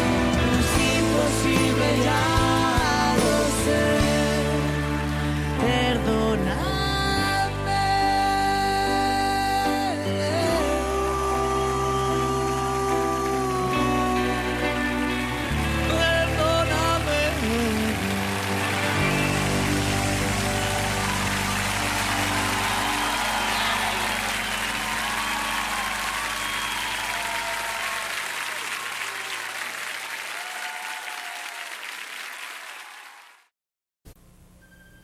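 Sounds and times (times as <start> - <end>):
audience applause and cheering: 0.0 - 6.2, 10.0 - 33.5.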